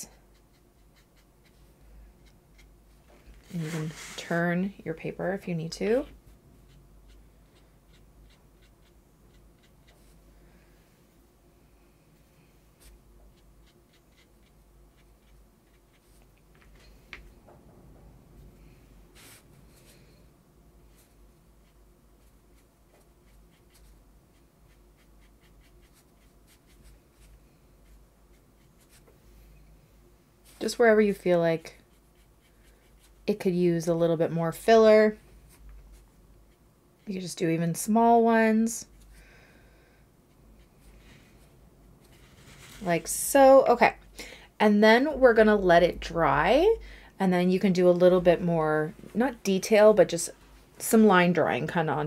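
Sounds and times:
low room hum: 0.0s - 52.0s
brush strokes on paper: 0.3s - 4.6s, 18.4s - 29.6s, 30.4s - 33.3s, 40.3s - 43.6s.

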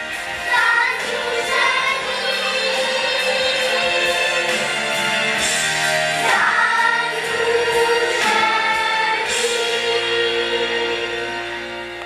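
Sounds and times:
group singing with accompaniment: 0.0s - 12.0s.

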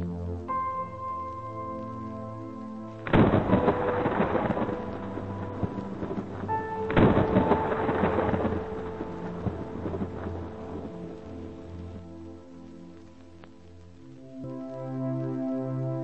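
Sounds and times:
slow ambient music: 0.0s - 16.0s
thunderclaps: 3.0s - 12.2s.

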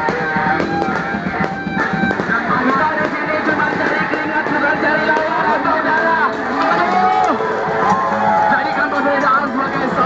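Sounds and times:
drum kit: 0.0s - 8.4s.

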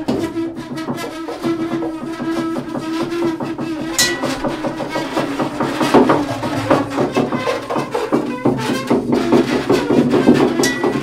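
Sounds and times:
bowed double bass note: 4.0s - 7.7s
struck double bass hit: 4.1s - 7.8s.

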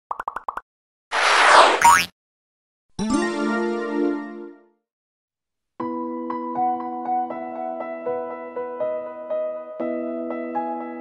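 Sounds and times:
whoosh with rising swoop: 1.1s - 2.0s.

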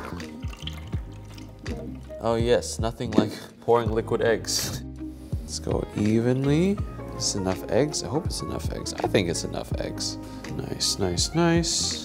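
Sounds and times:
liquid eggs splashing and dripping: 0.0s - 2.2s
background music: 0.0s - 12.0s.

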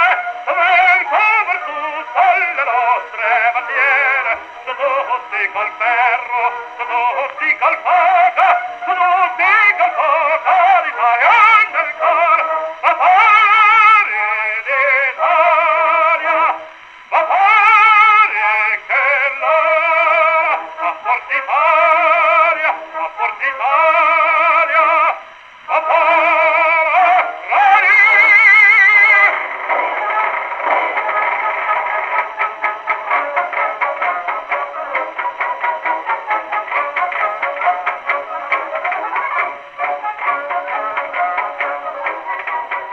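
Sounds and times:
operatic tenor singing on gramophone: 0.0s - 42.9s.

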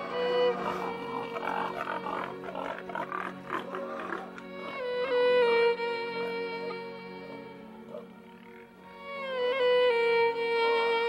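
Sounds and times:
slow string music: 0.0s - 11.0s
steady low drone: 0.0s - 11.0s
pigs grunting: 0.3s - 4.8s.

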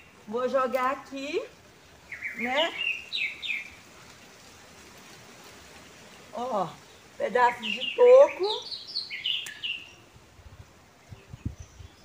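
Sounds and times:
small bird chirping: 2.1s - 3.8s, 6.9s - 10.0s.

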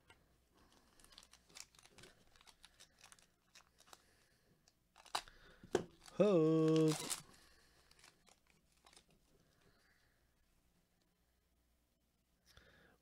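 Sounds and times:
foil wrapper crinkling and tearing: 0.7s - 4.2s, 4.9s - 9.1s.

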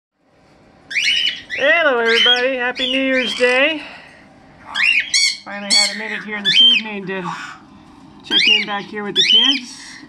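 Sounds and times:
high-pitched bird call: 0.9s - 3.7s, 4.6s - 7.0s, 8.3s - 9.9s.

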